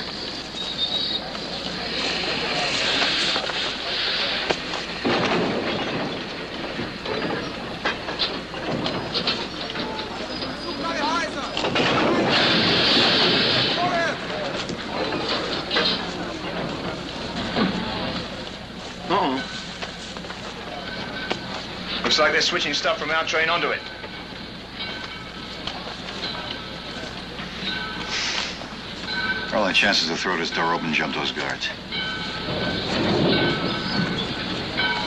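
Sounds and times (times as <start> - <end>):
indistinct voices: 0.0 - 35.0
train clanks: 0.0 - 35.0
train rumble: 0.0 - 35.0
air hiss: 28.0 - 28.8.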